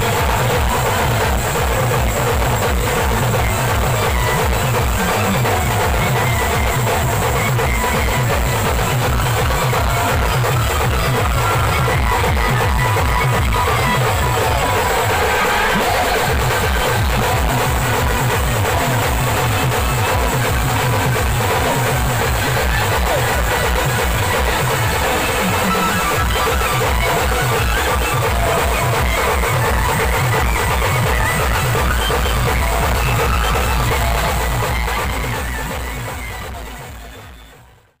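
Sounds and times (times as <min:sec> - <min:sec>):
band music with drums: 0:00.0 - 0:38.0.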